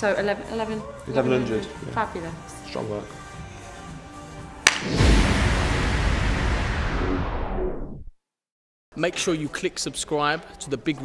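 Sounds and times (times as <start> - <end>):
background music: 0.0 - 6.2, 9.0 - 11.0
sharp crack: 4.6 - 7.0
swoosh and bass music sting: 4.8 - 8.1.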